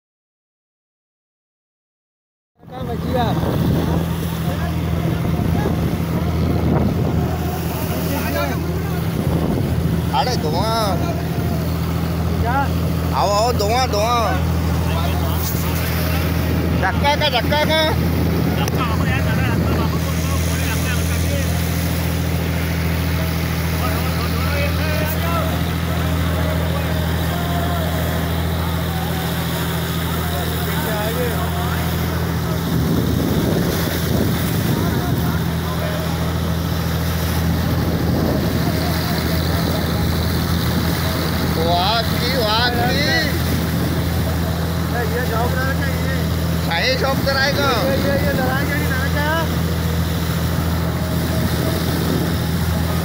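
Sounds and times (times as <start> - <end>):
boat engine humming: 2.6 - 53.0
voices: 2.6 - 53.0
water rushing and splashing: 2.6 - 53.0.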